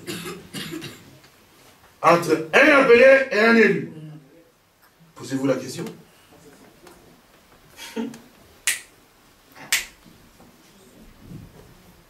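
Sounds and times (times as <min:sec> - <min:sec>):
finger snaps: 0:08.6 - 0:08.9, 0:09.7 - 0:10.0.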